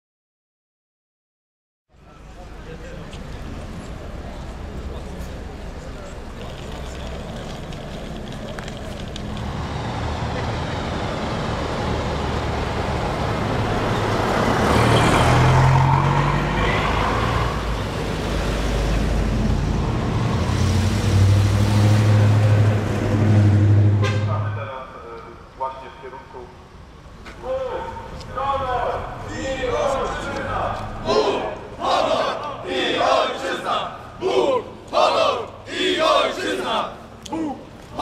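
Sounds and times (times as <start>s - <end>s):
vehicle engine hum: 1.9s - 38.0s.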